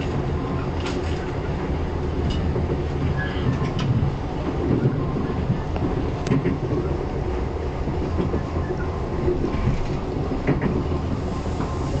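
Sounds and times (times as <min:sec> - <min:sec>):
passenger train rumbling: 0:00.0 - 0:12.0.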